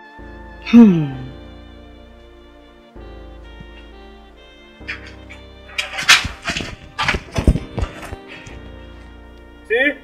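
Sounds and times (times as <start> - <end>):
film music: 0.0 - 10.0
sharp knocks: 4.8 - 8.3.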